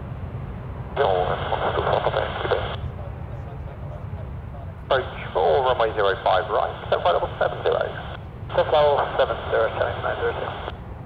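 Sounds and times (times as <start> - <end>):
steady low rumble: 0.0 - 11.0
tinny radio voice talking: 1.0 - 10.7.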